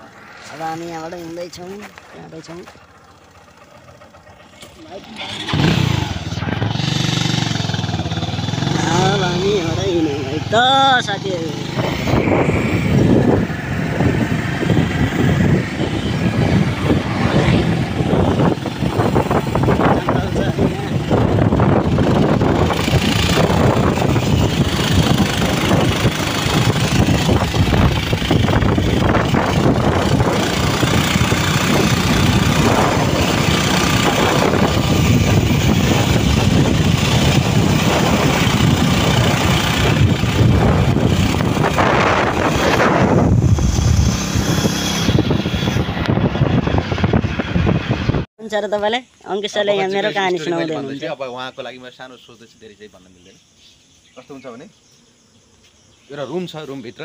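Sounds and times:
motorcycle engine running: 0:00.0 - 0:48.3
wind rush on microphone: 0:05.4 - 0:48.3.

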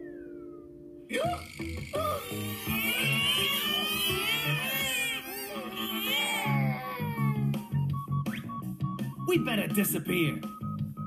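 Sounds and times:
background music: 0:00.0 - 0:11.0
cartoon character vocal outburst: 0:01.1 - 0:07.4
high wavering cartoon crying: 0:01.1 - 0:07.5.

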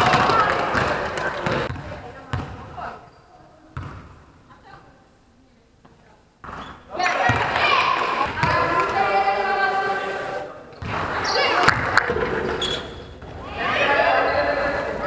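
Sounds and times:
basketball bouncing on floor: 0:00.0 - 0:02.8, 0:03.8 - 0:04.2, 0:05.8 - 0:08.9
players' voices: 0:00.0 - 0:15.0.

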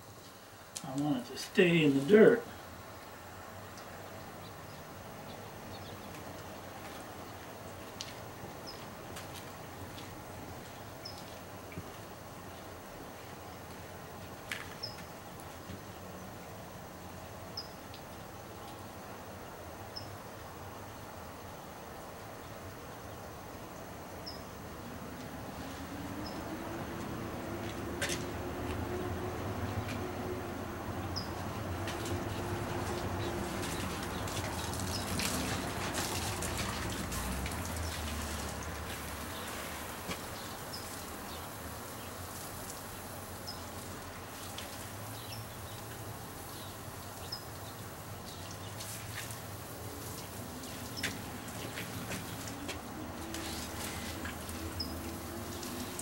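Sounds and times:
garden hose spraying water: 0:00.0 - 0:56.0.

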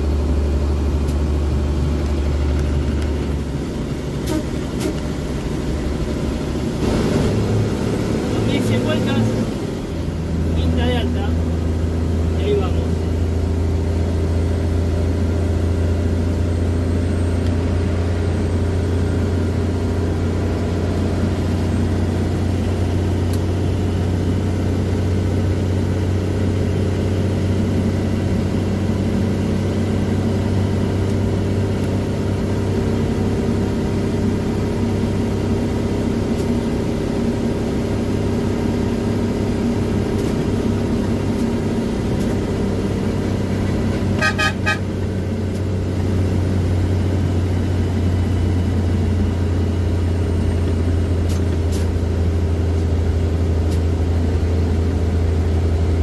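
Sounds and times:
diesel truck engine running: 0:00.0 - 0:56.0
pulsing horn toot: 0:04.2 - 0:05.0, 0:44.1 - 0:45.0.

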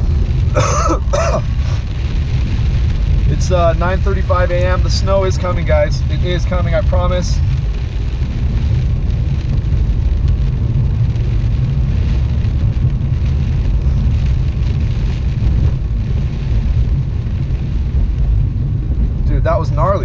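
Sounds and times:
car engine rumble: 0:00.0 - 0:20.0
rain on windshield: 0:00.0 - 0:20.0
tyres on wet road: 0:00.0 - 0:20.0.

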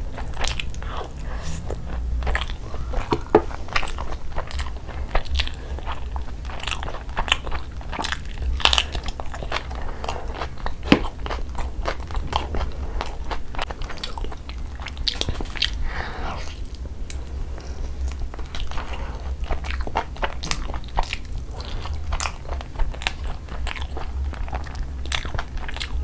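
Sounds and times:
close chewing with mouth clicks: 0:00.0 - 0:26.0.

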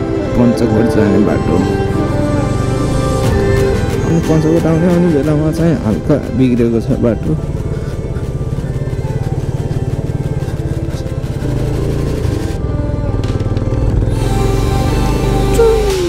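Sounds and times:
motorcycle engine running: 0:00.0 - 0:16.0.

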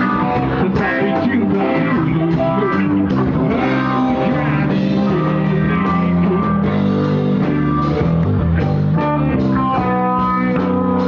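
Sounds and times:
bass guitar: 0:00.0 - 0:11.0
electric guitar: 0:00.0 - 0:11.0
live rock band: 0:00.0 - 0:11.0.

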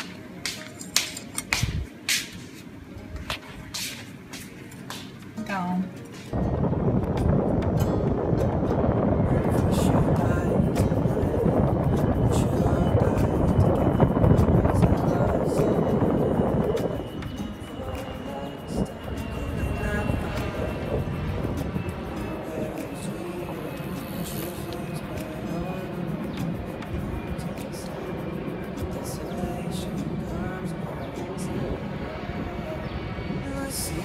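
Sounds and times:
wind rushing over microphone: 0:01.4 - 0:02.1, 0:06.3 - 0:34.0.

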